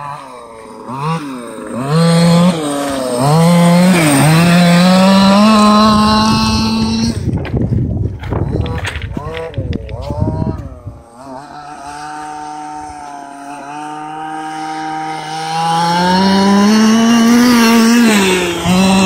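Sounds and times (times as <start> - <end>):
small petrol engine high revs: 0.0 - 19.0.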